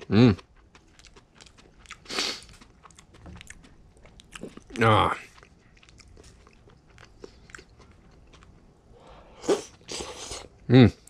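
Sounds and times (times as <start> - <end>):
person chewing food: 0.0 - 11.0.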